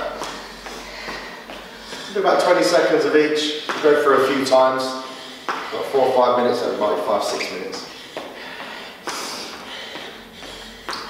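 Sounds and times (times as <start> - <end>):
trainers moving on hard floor: 0.0 - 11.0
forceful breath out: 0.1 - 2.2, 7.8 - 11.0.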